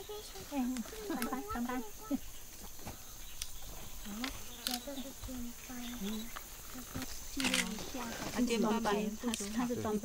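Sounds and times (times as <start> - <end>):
insects droning: 0.0 - 10.0
woman's voice: 7.4 - 10.0.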